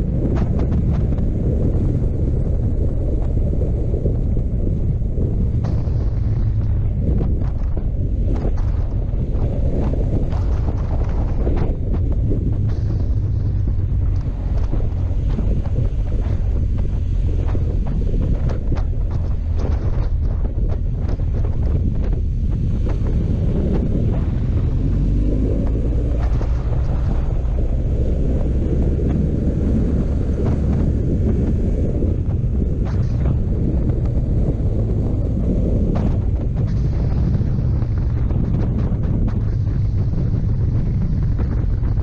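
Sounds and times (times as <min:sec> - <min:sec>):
motorcycle engine rumble: 0:00.0 - 0:42.0
wind noise on microphone: 0:00.0 - 0:42.0.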